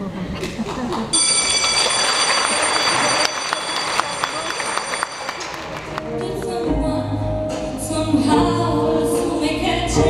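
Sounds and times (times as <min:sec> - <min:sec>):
electric school bell ringing: 0:01.2 - 0:06.0.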